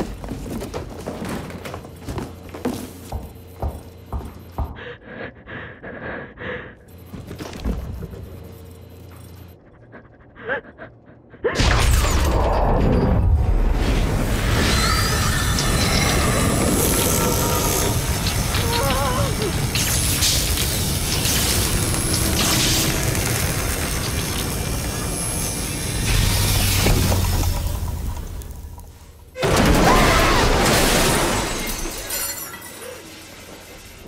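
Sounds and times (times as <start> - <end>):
woman whimpering: 10.3 - 11.6.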